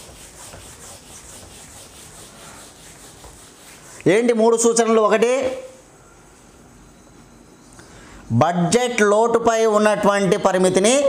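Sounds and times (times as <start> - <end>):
wiping a whiteboard: 0.0 - 5.6.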